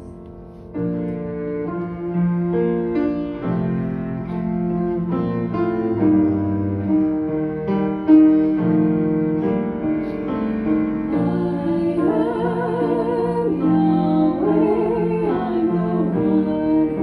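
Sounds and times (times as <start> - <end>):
bowed cello: 0.0 - 17.0
piano: 0.0 - 17.0.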